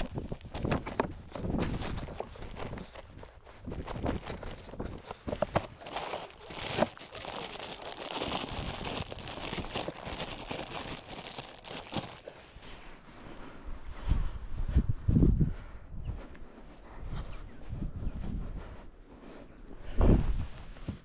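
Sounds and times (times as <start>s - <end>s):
plastic bag crinkling: 0.0s - 0.9s, 5.6s - 12.4s
footsteps on dry grass: 3.6s - 12.4s.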